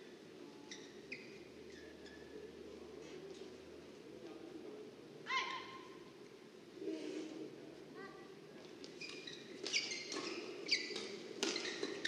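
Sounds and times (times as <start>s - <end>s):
shoe squeak on floor: 0.7s - 2.4s, 9.0s - 12.0s.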